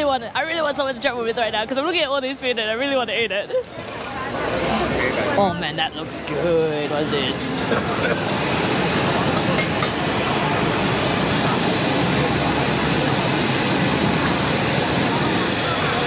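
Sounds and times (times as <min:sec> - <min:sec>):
electric blower fan rushing air: 0:03.8 - 0:16.0.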